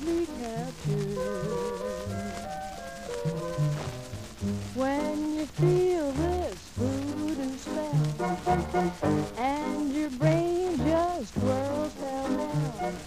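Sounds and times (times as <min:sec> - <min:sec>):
latin dance band music on record: 0:08.0 - 0:09.8.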